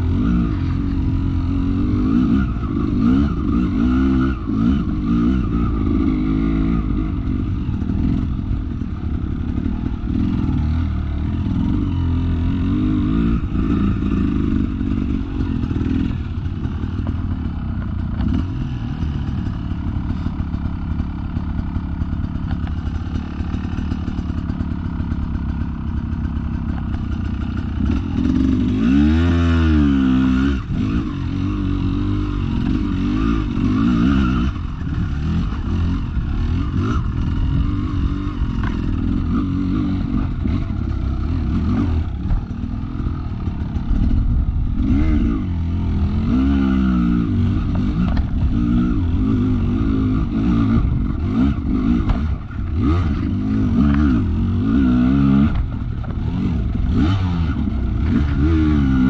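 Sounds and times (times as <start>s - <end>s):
dirt bike engine revving: 0.0s - 59.0s.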